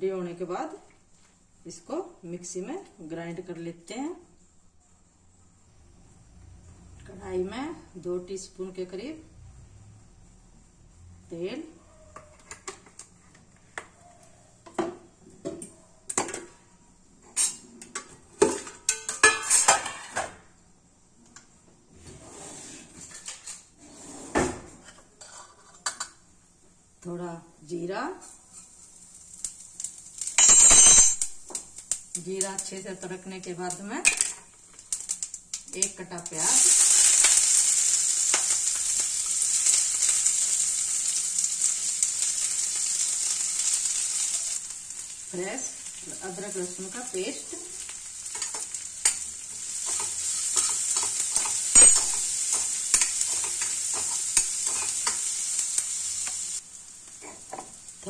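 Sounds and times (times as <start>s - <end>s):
spatula stirring and scraping: 24.9s - 25.9s, 49.8s - 55.3s
seeds crackling in hot oil: 27.6s - 58.0s.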